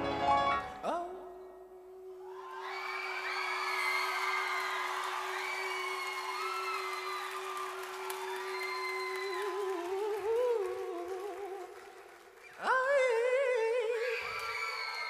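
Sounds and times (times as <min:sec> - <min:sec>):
audience whooping and cheering: 0:02.3 - 0:10.1, 0:14.0 - 0:15.0.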